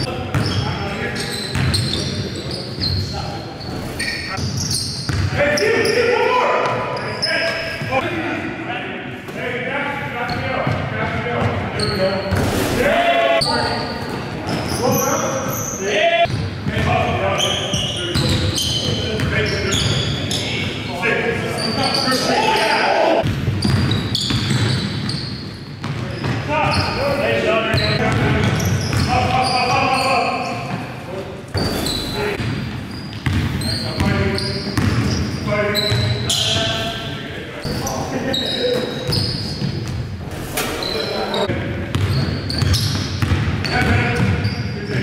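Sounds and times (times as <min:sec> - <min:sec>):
sneakers squeaking: 0:00.0 - 0:08.0, 0:10.0 - 0:45.0
basketball bouncing: 0:04.5 - 0:05.4, 0:23.2 - 0:25.2, 0:27.7 - 0:29.1, 0:32.4 - 0:34.2, 0:34.8 - 0:35.2, 0:41.9 - 0:44.5
players shouting: 0:21.6 - 0:23.2.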